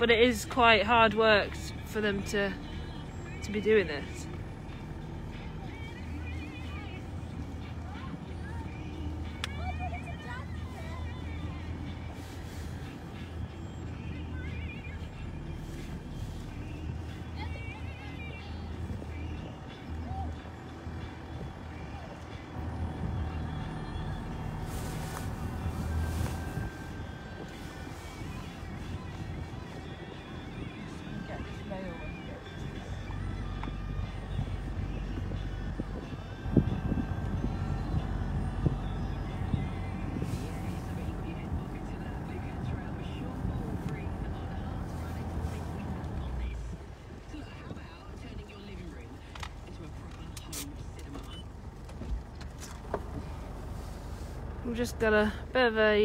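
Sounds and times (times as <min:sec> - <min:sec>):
steady low rumble: 0:00.0 - 0:56.0
faint indistinct voices: 0:05.2 - 0:54.7.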